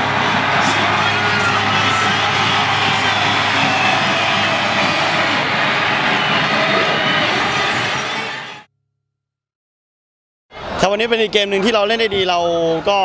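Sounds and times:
stadium crowd cheering and shouting: 0.0 - 8.7, 10.5 - 13.0.

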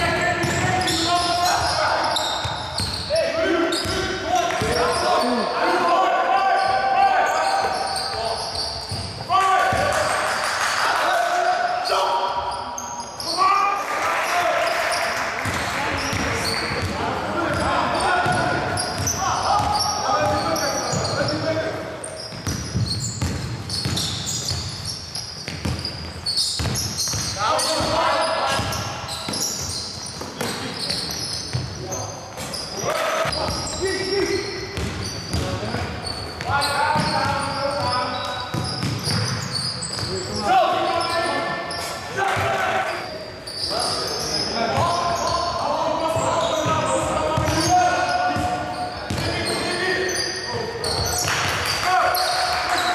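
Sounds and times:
basketball bouncing on court: 0.0 - 1.8, 2.4 - 3.1, 3.8 - 5.0, 8.8 - 10.1, 15.4 - 21.4, 22.3 - 31.8, 34.7 - 40.2, 46.1 - 49.6.

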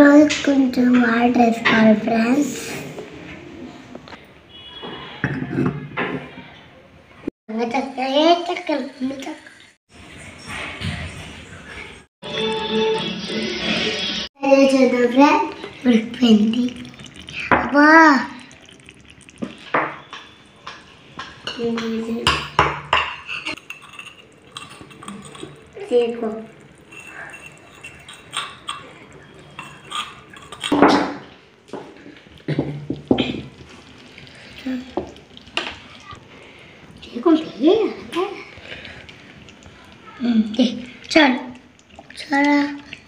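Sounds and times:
child's voice: 7.5 - 9.5, 14.4 - 16.8, 17.5 - 18.4, 42.1 - 42.9
toy pots and lids clinking: 26.8 - 31.0.

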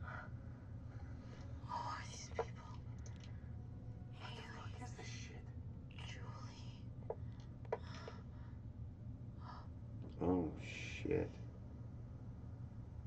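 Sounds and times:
steady low hum: 0.0 - 13.0
hushed whispering: 1.6 - 3.0, 4.2 - 6.9.

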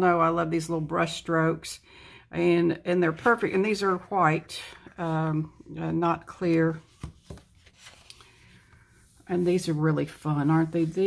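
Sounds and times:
paper rustling: 6.4 - 11.0.

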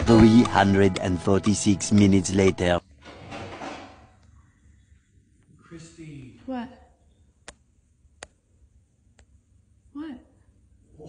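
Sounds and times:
dishwasher door sliding open: 3.0 - 4.0.

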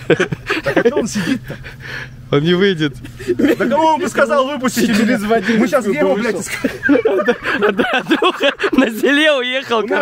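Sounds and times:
men talking: 0.0 - 10.0
steady low hum: 0.0 - 10.0.

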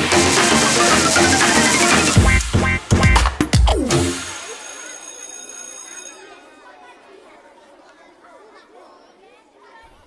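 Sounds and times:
chatter of overlapping voices: 4.2 - 10.0.

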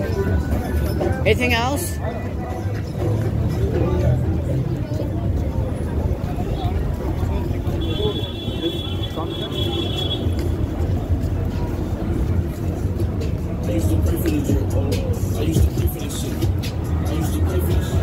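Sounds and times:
people walking and talking: 0.0 - 18.0
traffic rumble: 0.0 - 18.0.

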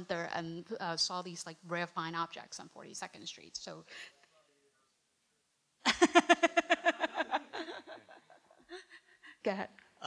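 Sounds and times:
person laughing: 5.9 - 9.1.

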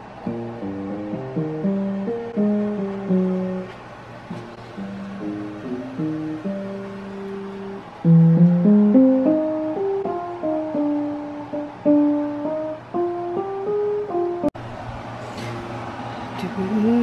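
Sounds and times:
digital piano melody: 0.0 - 14.6.

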